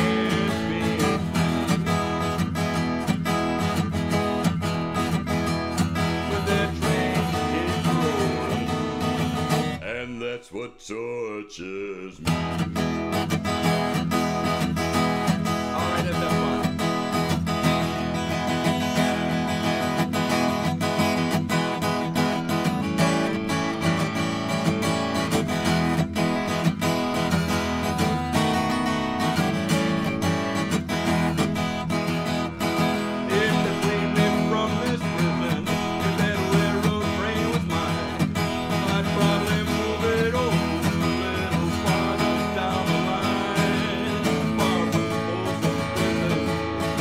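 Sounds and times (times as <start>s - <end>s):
acoustic guitar strumming: 0.0s - 10.4s, 12.1s - 47.0s.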